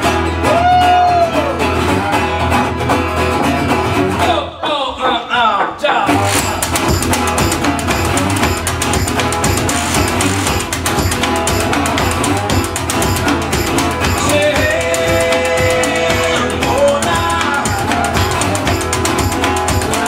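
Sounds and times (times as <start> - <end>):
resonator guitar blues: 0.0 - 5.0, 6.1 - 20.0
washboard scraping rhythm: 4.7 - 20.0.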